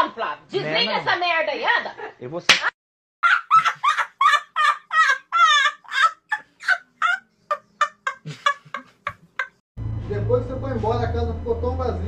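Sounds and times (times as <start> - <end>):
person laughing high-pitched: 3.2 - 9.6.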